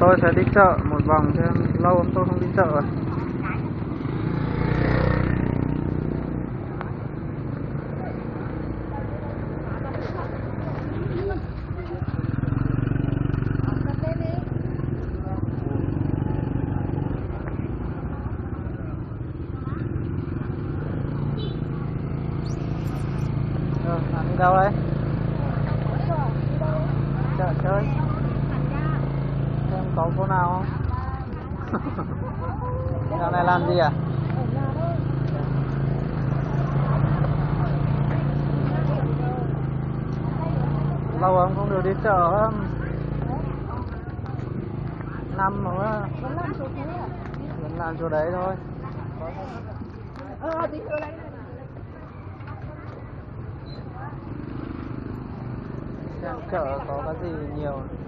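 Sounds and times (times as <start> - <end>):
crowd chatter: 0.0 - 58.0
small motorbike engines passing: 0.0 - 58.0
people talking: 25.4 - 54.4.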